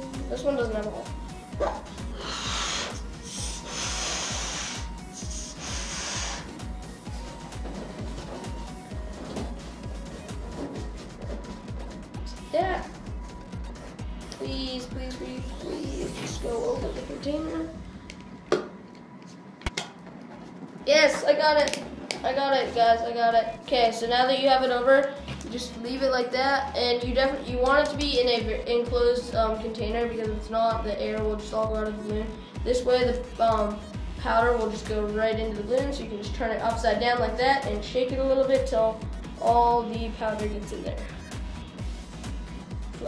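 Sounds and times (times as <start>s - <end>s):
music with steady beat: 0.0s - 19.2s, 26.6s - 43.0s
air rushing into balloon: 2.1s - 6.6s.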